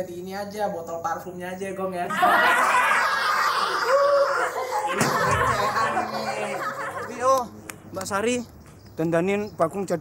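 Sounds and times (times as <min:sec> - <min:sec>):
group of people laughing: 0:02.1 - 0:07.5.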